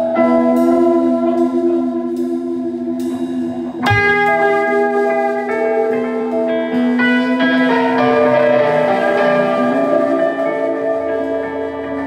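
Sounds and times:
electric guitar chords ringing: 0:00.0 - 0:12.0
live rock band: 0:00.0 - 0:12.0.

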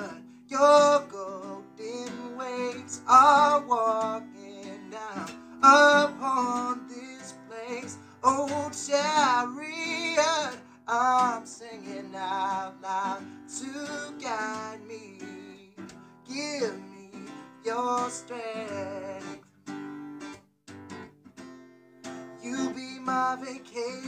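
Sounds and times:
man singing: 0:00.0 - 0:19.4, 0:22.4 - 0:24.0
strummed acoustic guitar: 0:00.0 - 0:24.0.

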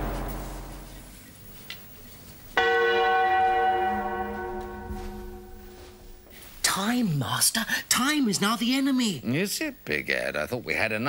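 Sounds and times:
church bell ringing: 0:00.0 - 0:01.1, 0:02.6 - 0:06.2.

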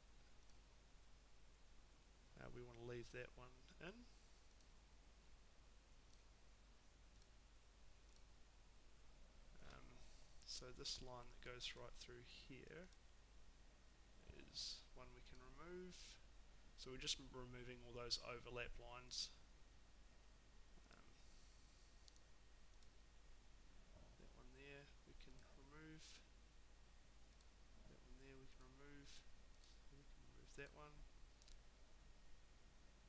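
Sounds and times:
faint computer mouse clicks: 0:04.5 - 0:04.7, 0:22.0 - 0:23.0, 0:31.4 - 0:31.6.

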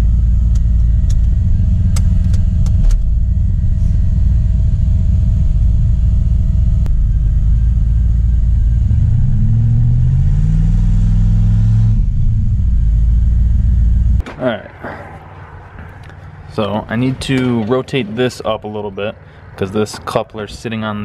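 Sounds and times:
car engine idling and revving: 0:00.0 - 0:14.3, 0:14.9 - 0:20.6.

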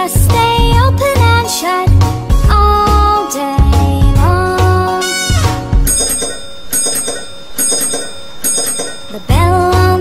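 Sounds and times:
bell ringing: 0:05.0 - 0:10.0.

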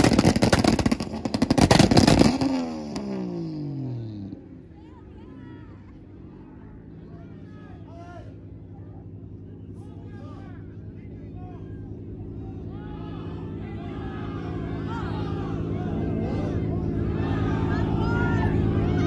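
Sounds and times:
car engine idling: 0:00.0 - 0:19.0
people chatting: 0:04.7 - 0:19.0.

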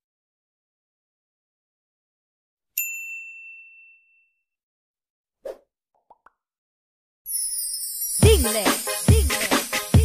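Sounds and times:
bell-like ding: 0:02.8 - 0:04.4.

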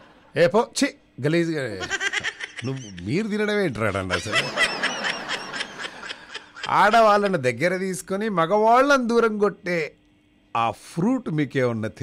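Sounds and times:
person speaking: 0:00.3 - 0:04.6, 0:06.2 - 0:12.0.

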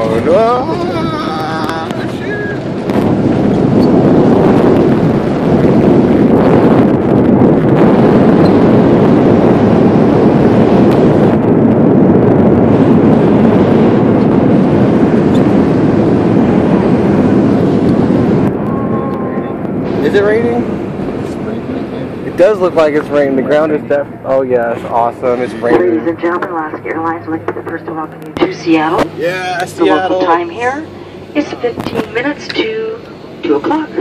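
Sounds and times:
jet engines roaring: 0:00.0 - 0:34.0.

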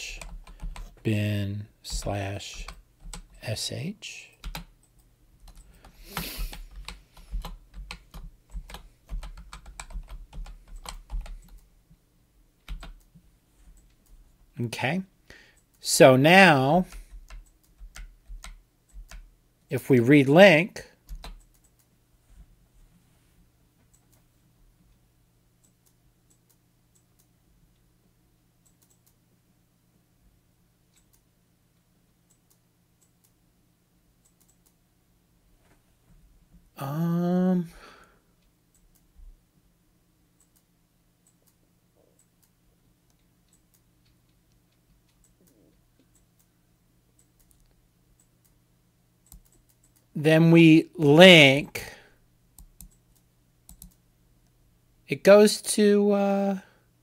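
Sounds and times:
computer keyboard typing: 0:00.0 - 0:01.0, 0:01.9 - 0:03.4, 0:04.4 - 0:11.7, 0:12.6 - 0:13.1, 0:16.8 - 0:19.3, 0:21.1 - 0:21.9, 0:28.6 - 0:29.2, 0:49.2 - 0:50.0, 0:52.6 - 0:54.0
low steady hum: 0:00.0 - 0:57.0
keyboard or mouse clicks: 0:28.6 - 0:29.2, 0:49.2 - 0:50.1, 0:52.6 - 0:54.0.

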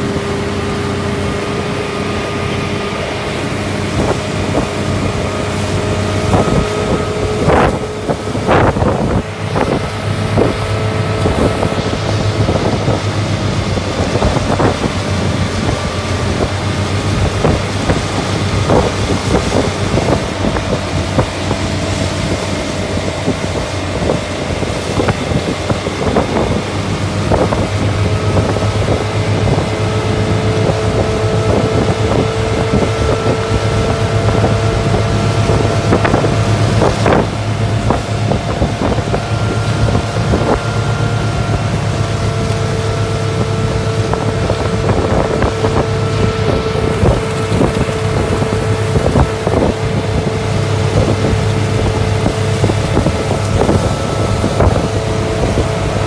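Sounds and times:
motorboat engine running: 0:00.0 - 0:56.0
rushing wake water: 0:00.0 - 0:56.0
wind on microphone: 0:00.0 - 0:56.0.

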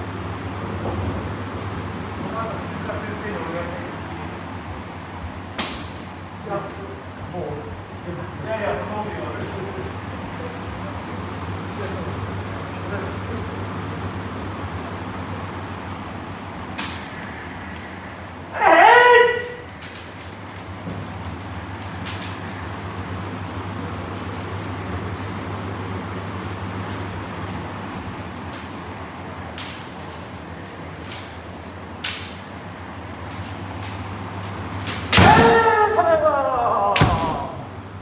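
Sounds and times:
steady low hum: 0:00.0 - 0:38.0
person shouting: 0:18.5 - 0:19.7, 0:35.2 - 0:37.7.

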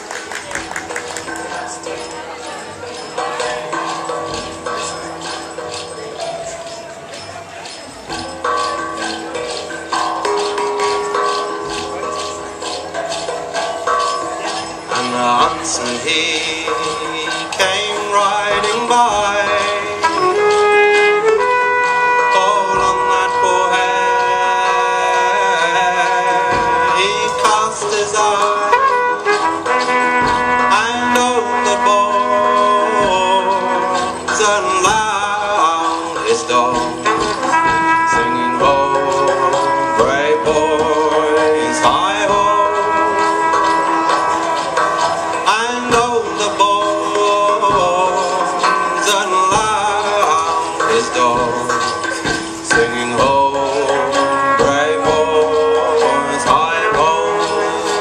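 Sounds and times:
band accompaniment: 0:00.0 - 0:58.0
trumpet holding long notes: 0:20.0 - 0:25.4, 0:28.6 - 0:34.2, 0:37.3 - 0:44.8, 0:54.0 - 0:58.0.

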